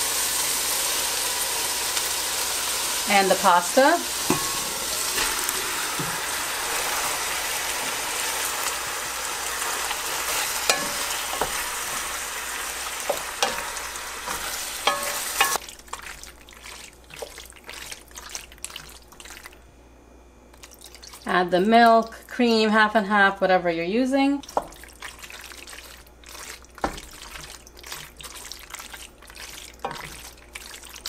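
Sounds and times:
food sizzling in a pot: 0.0s - 18.4s, 29.4s - 30.8s
wooden spoon stirring: 4.2s - 19.6s, 24.4s - 31.0s
spoon knocking against pot: 4.3s - 5.4s, 14.9s - 15.6s.

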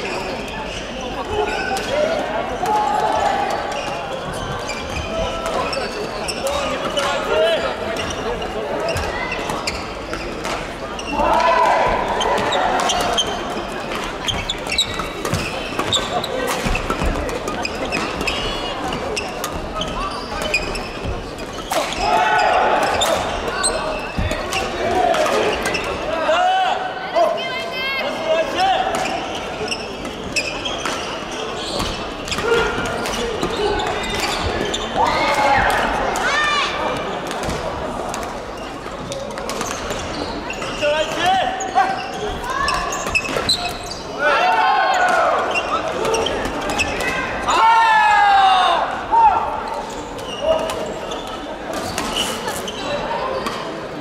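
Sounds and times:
voices and shouts of players: 0.0s - 54.0s.

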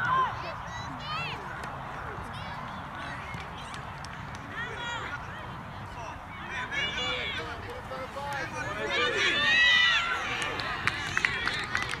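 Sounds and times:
people shouting: 8.5s - 10.6s.

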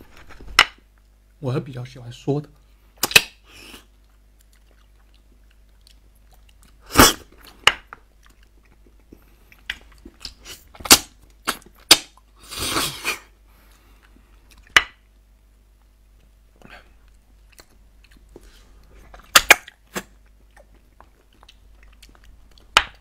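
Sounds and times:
wet sucking and chewing: 3.1s - 7.6s, 8.2s - 14.7s, 16.6s - 23.0s.

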